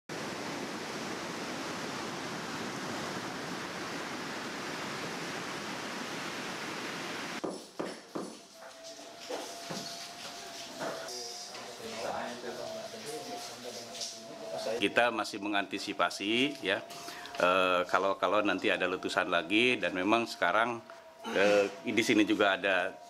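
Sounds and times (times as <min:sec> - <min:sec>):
surf breaking on a beach: 0:00.1 - 0:07.4.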